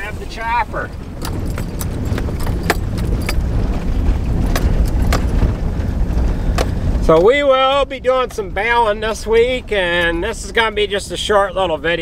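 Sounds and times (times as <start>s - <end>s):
sharp clicks and rattles: 0.0s - 9.2s
vehicle driving rumble: 0.0s - 12.0s.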